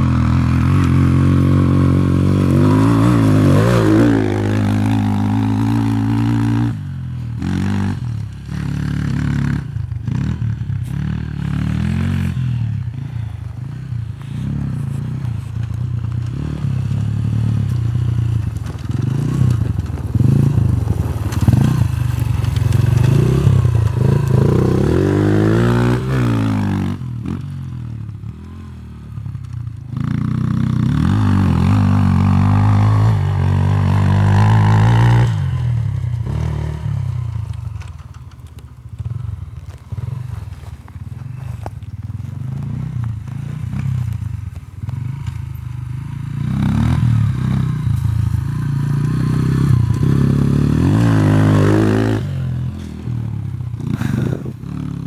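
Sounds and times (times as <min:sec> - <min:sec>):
motorcycle revving: 0:00.0 - 0:55.0.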